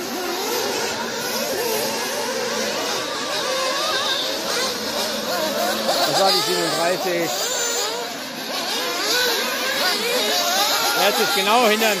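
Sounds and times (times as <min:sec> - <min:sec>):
model buggy engines whining: 0:00.0 - 0:12.0.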